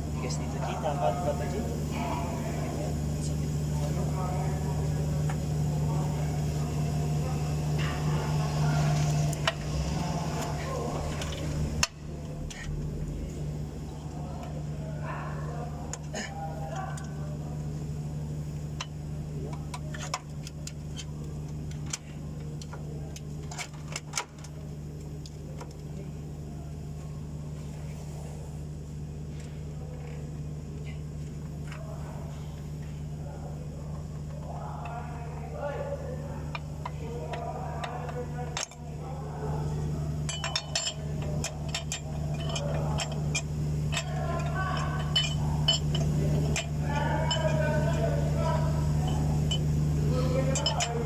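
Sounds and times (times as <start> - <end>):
indistinct voices: 0.0 - 28.6, 29.3 - 51.0
steady low hum: 0.0 - 51.0
metal clicks of drive belt: 36.5 - 38.9.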